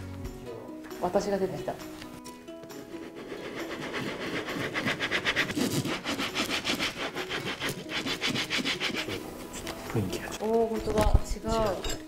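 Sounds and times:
rubbing on wooden print block: 2.8 - 9.7.

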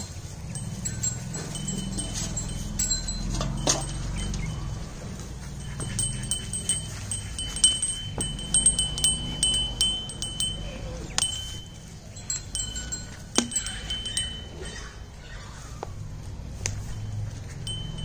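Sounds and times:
small metal bell jangling: 0.0 - 15.2, 16.8 - 18.0
sharp clicks of shaken bell: 5.4 - 14.6.

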